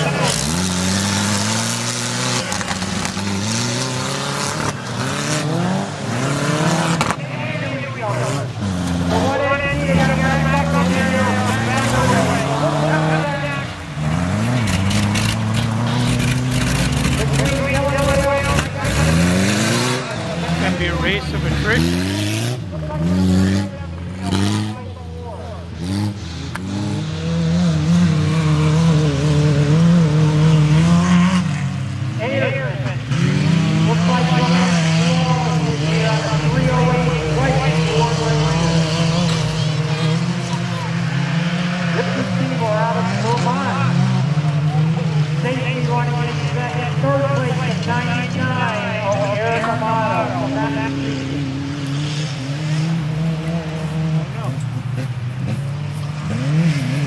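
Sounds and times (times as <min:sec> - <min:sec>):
truck engines revving: 0:00.0 - 0:57.0.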